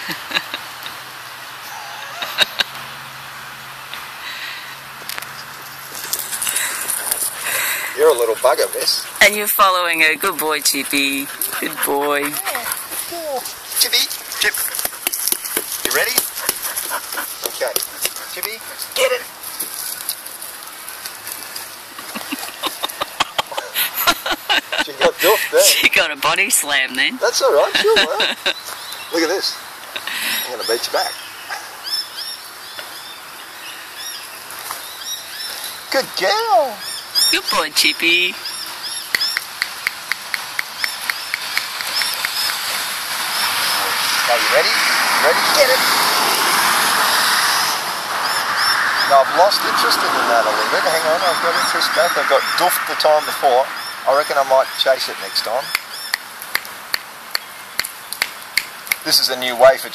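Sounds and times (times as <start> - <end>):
outdoor background noise: 0.0 - 59.9
small birds chirping: 4.2 - 25.8, 27.2 - 44.7, 50.3 - 59.9.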